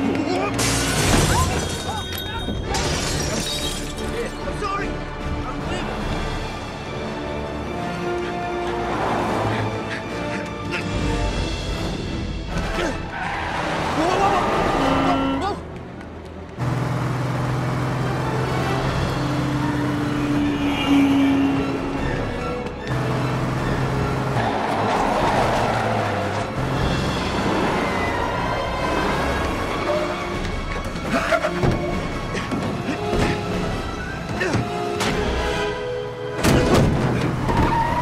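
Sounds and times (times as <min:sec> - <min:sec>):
film music: 0:00.0 - 0:38.0
glass shattering: 0:00.6 - 0:04.2
tinkling glass shards: 0:00.9 - 0:04.2
car engine running: 0:16.4 - 0:20.4.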